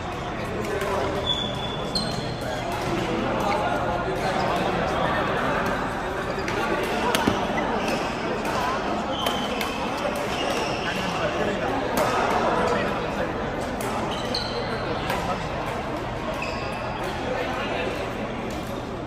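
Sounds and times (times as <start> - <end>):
players' voices and chatter: 0.0 - 19.0.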